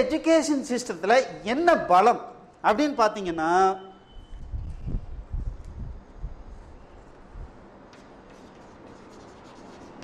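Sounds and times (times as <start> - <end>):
chalk tapping: 7.9 - 10.0
chalk scratching on chalkboard: 8.2 - 10.0.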